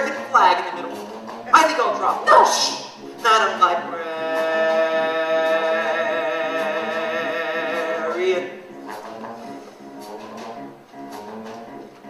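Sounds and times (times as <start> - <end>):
soft orchestra accompaniment: 0.0 - 12.0
light percussive taps: 0.9 - 1.5.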